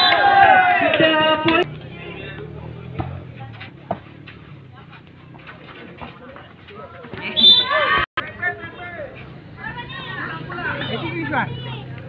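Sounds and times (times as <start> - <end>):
crowd shouting: 0.0 - 3.2, 7.1 - 12.0
murmur of spectators: 0.0 - 12.0
volleyball being struck: 2.8 - 4.5.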